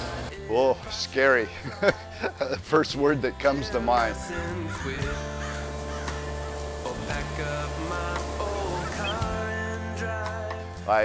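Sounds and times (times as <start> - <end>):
music with held chords: 1.4 - 11.0
heron calling: 4.5 - 9.6.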